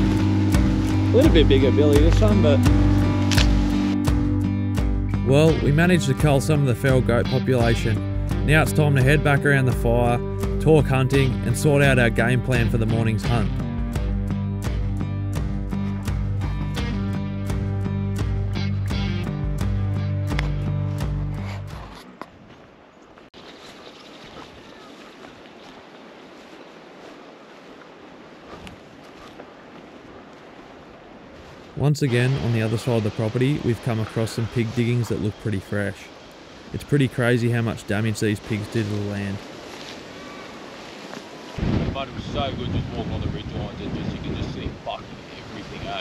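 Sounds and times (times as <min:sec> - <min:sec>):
strummed guitar music: 0:00.0 - 0:22.0
rustles of walking through grass: 0:21.8 - 0:34.8, 0:38.2 - 0:41.9
wind hiss on microphone: 0:41.5 - 0:46.0.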